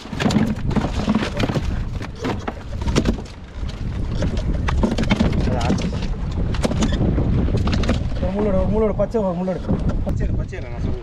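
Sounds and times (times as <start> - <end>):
boat engine low rumble: 0.0 - 11.0
wind on microphone: 0.0 - 11.0.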